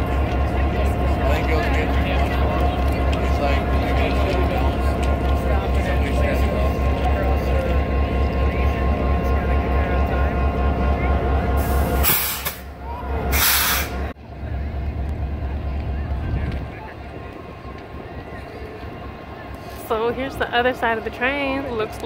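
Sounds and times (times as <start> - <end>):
diesel locomotive idling: 0.0 - 22.0
loud air hisses: 11.6 - 12.7, 13.3 - 14.1.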